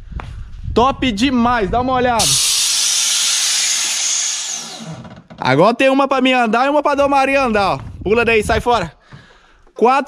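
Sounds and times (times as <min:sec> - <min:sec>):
loud steady hiss: 0:02.2 - 0:05.0.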